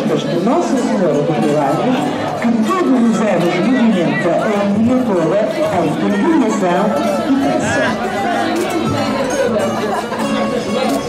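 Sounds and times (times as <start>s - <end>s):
voices over music: 0.0s - 11.0s
acoustic guitars playing: 6.2s - 11.0s.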